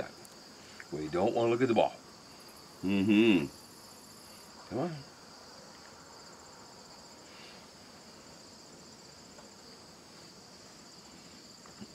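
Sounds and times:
insects chirring: 0.0s - 11.9s.

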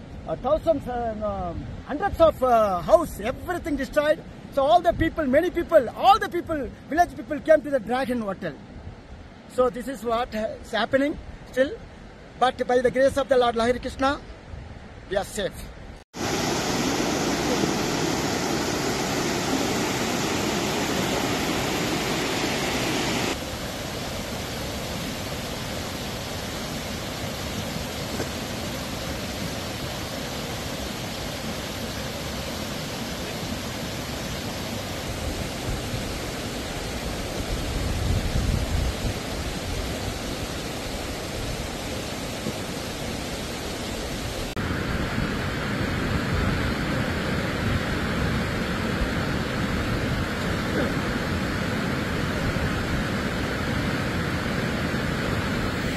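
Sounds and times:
rushing river roar: 16.2s - 55.9s.

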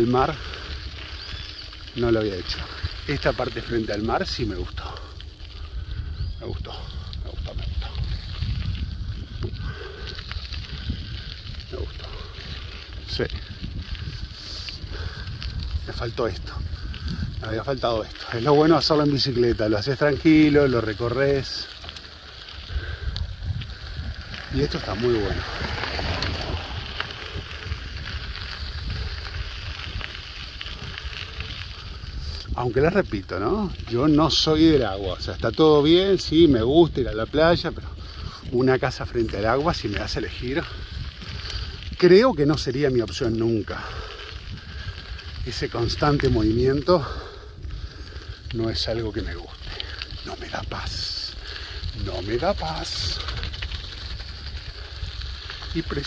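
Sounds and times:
tyres rolling on dirt road: 0.0s - 56.0s
wind rumbling on microphone: 0.0s - 56.0s
faint ticks: 21.0s - 24.8s, 40.6s - 56.0s.

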